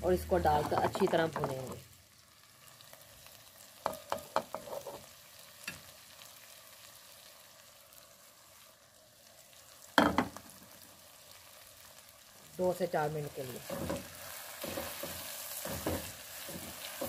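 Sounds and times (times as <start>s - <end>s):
food sizzling in oil: 0.0s - 17.0s.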